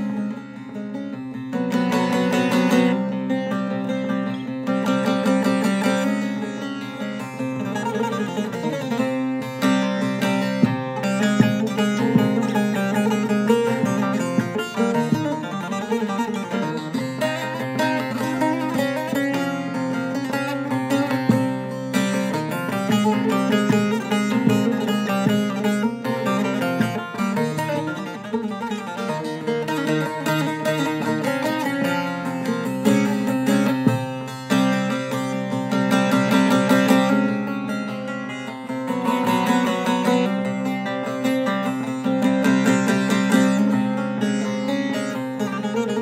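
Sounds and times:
plucked lute melody: 0:00.0 - 0:46.0.

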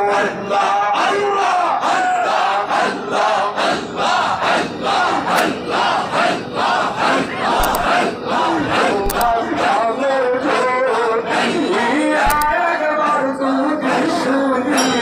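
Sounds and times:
men chanting rhythmically: 0:00.0 - 0:15.0.

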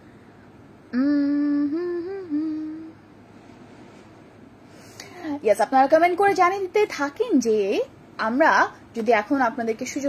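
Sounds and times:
woman humming: 0:00.9 - 0:03.1.

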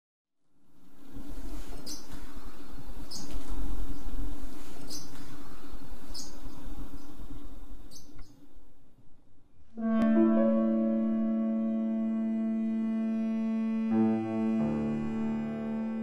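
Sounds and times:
low hum and rumble: 0:00.7 - 0:16.0
high bird chirps: 0:01.8 - 0:02.4, 0:03.0 - 0:04.2, 0:04.8 - 0:07.2, 0:07.8 - 0:08.4
held piano notes: 0:09.8 - 0:16.0.

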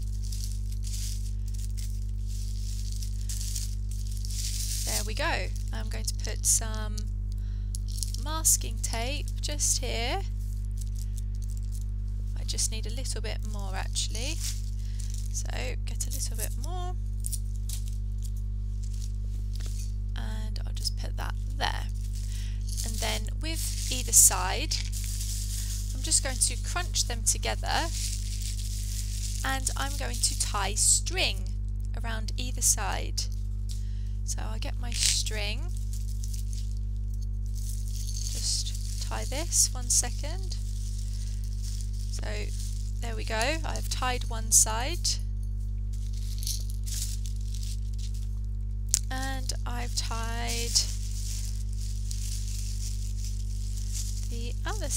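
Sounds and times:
beans rattling in a glass jar: 0:00.0 - 0:06.6, 0:07.7 - 0:11.9, 0:13.9 - 0:20.1, 0:21.4 - 0:30.9, 0:34.9 - 0:54.9
low electrical hum: 0:00.0 - 0:54.9.

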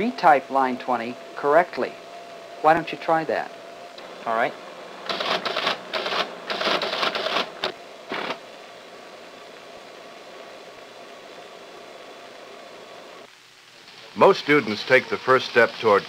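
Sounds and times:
teletype humming: 0:00.0 - 0:16.0
teletype clattering: 0:05.1 - 0:08.4.

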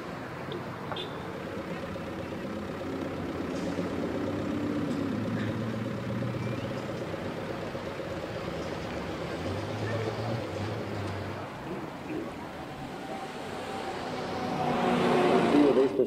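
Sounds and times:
vehicle engines humming: 0:00.0 - 0:16.0.

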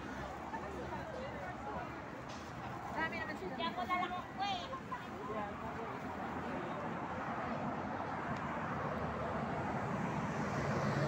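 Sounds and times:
people chattering: 0:00.0 - 0:10.4
outdoor street noise: 0:00.0 - 0:11.0.

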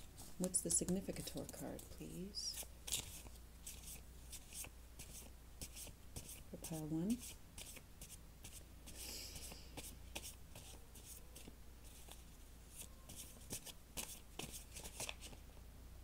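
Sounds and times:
low steady hum: 0:00.0 - 0:16.0
cards shuffling: 0:00.8 - 0:06.4, 0:12.8 - 0:15.4.

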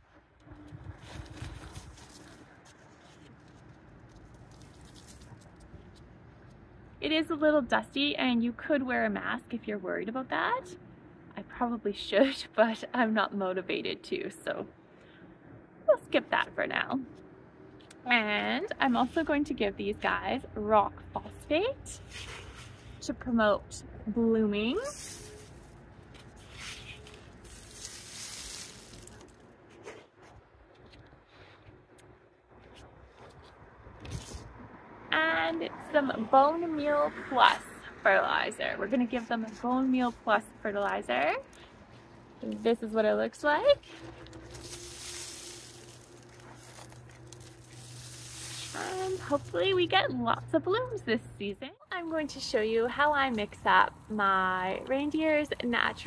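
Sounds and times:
fertilizer sprinkling by hand: 0:04.1 - 0:05.6, 0:24.8 - 0:29.4, 0:43.8 - 0:49.7.

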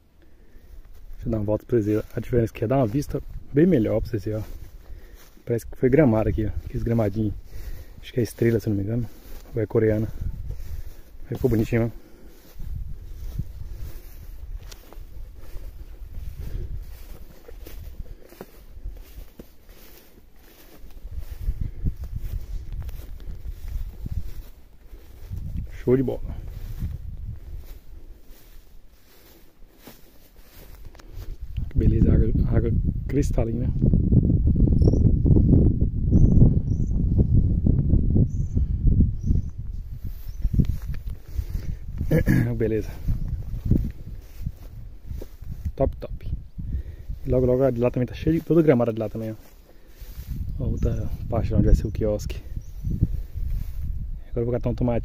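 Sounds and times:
footsteps on dry grass: 0:00.2 - 0:34.6, 0:39.2 - 0:55.0
wind buffeting microphone: 0:00.8 - 0:55.0.

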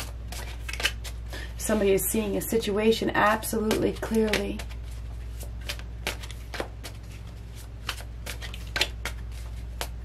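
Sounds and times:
cards riffling: 0:00.0 - 0:01.3, 0:04.0 - 0:10.0.

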